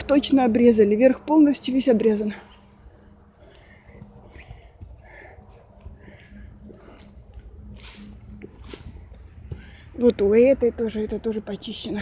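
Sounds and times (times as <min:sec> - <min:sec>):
faint steady hum: 0:00.0 - 0:12.0
low wind rumble on microphone: 0:00.0 - 0:12.0.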